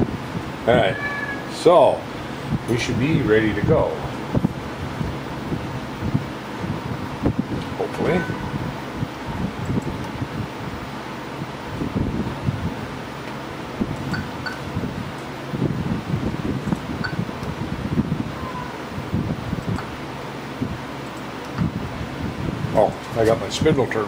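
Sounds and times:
machine shop background noise: 13.0 - 15.5.

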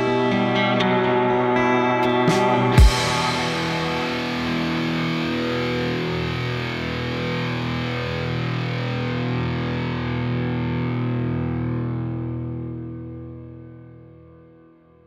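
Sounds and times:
distorted guitar chord: 0.0 - 14.8.

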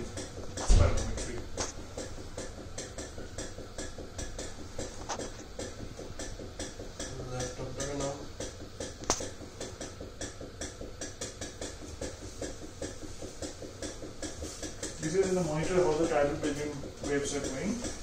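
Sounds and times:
rapid sharp clicks: 0.0 - 18.0.

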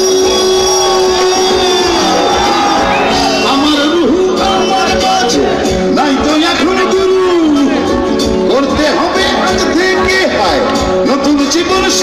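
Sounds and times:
loud live band music: 0.0 - 12.0.

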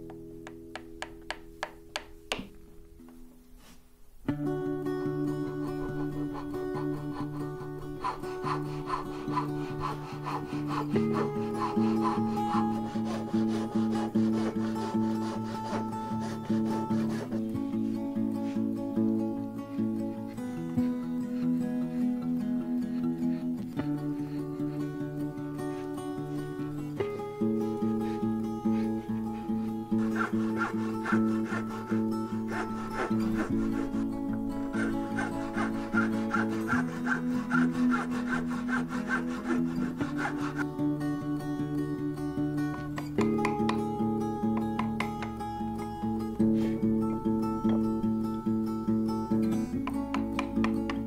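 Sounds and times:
guitar music: 0.0 - 51.0
hand saw cutting board: 5.5 - 17.6, 25.6 - 40.7, 42.7 - 45.5, 49.8 - 51.0.

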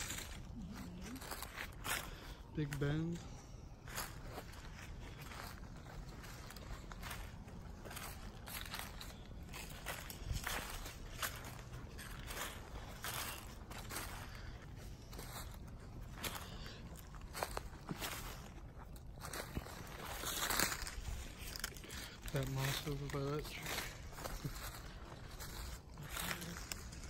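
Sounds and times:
footsteps crunching dry leaves: 0.0 - 27.0.

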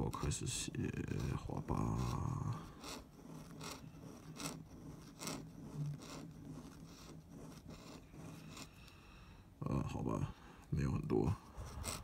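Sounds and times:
pen nib scratching paper: 0.0 - 9.0, 11.0 - 12.0.

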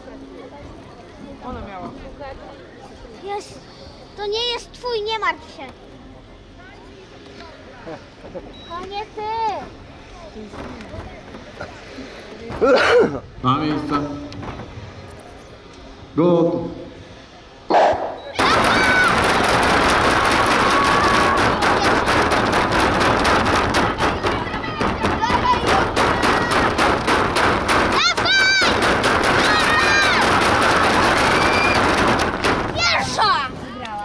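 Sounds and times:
loud shouts: 17.7 - 19.4, 20.4 - 22.0, 27.9 - 32.0, 32.7 - 33.5
spectators cheering and clapping: 17.9 - 33.4.

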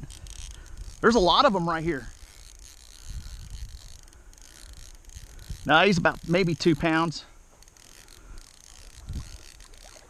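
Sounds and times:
fishing reel drag clicking: 0.0 - 10.0.

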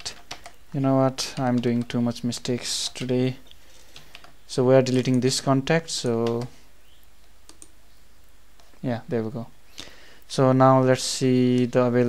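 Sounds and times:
computer mouse clicks: 0.0 - 0.6, 2.9 - 5.2, 6.0 - 7.8
room hiss: 0.0 - 12.0.

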